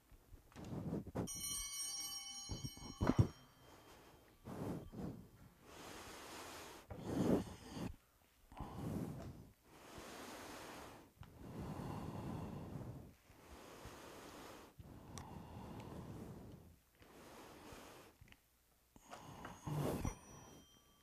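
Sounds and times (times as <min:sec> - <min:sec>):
breathing: 0:00.5 - 0:01.4, 0:02.6 - 0:18.2, 0:19.0 - 0:21.0
bell ringing: 0:01.3 - 0:04.9, 0:19.6 - 0:21.0.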